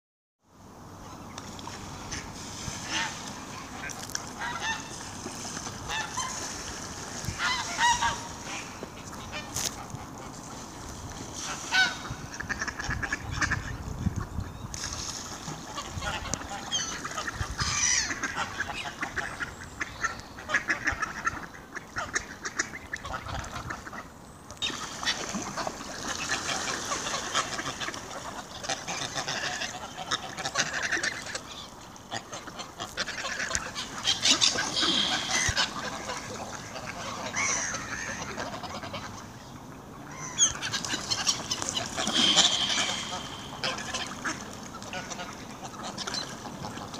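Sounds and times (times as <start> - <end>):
ducks calling: 2.0 - 10.4, 11.4 - 13.8, 15.4 - 39.4, 40.1 - 46.9
geese honking: 2.8 - 5.0, 5.8 - 6.6, 7.2 - 9.6, 11.4 - 13.6, 26.7 - 39.3, 40.1 - 46.9.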